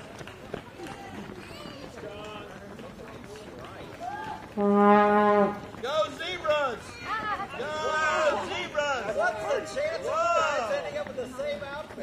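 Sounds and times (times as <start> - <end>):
spectators cheering: 4.0 - 4.6
horn blast: 4.6 - 5.7.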